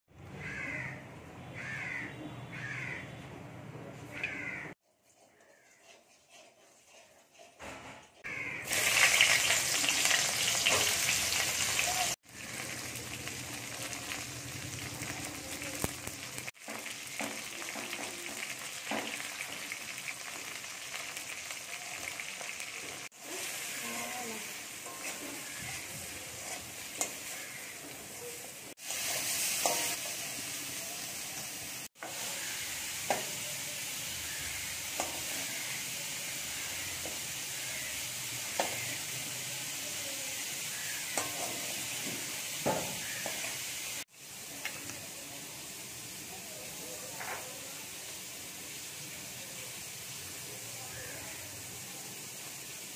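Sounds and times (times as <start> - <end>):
metal spatula scraping a wok: 4.2 - 11.4, 23.1 - 39.5, 40.5 - 44.0
vegetable slices sizzling in oil: 4.2 - 52.9.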